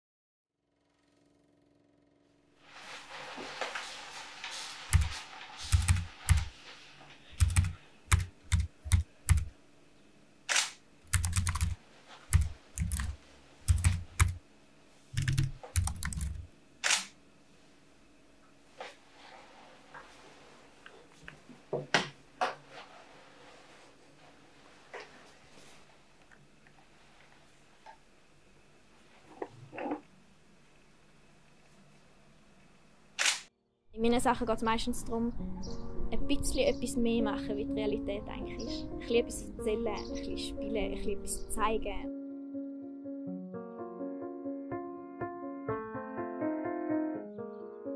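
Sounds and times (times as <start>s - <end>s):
keyboard typing clicks: 4.9s - 5.1s, 5.7s - 6.5s, 7.4s - 9.5s, 10.5s - 14.4s, 15.2s - 17.1s
camera shutter release: 10.5s - 10.8s, 16.8s - 17.2s, 33.2s - 33.5s.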